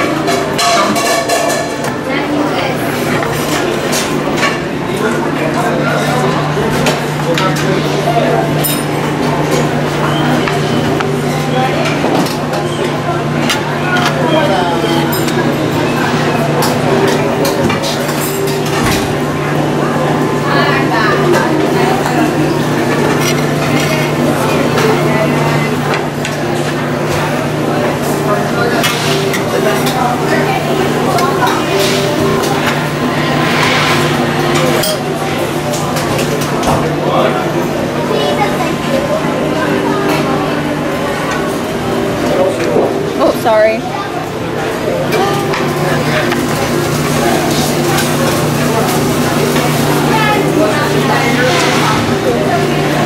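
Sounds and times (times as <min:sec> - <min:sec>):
utensils clinking on metal pans: 0:00.0 - 0:02.4
utensils clattering on metal pans: 0:00.0 - 0:04.7, 0:05.9 - 0:19.5, 0:20.5 - 0:37.2, 0:45.1 - 0:53.0
background chatter: 0:00.0 - 0:53.0
steady low hum: 0:30.0 - 0:36.6.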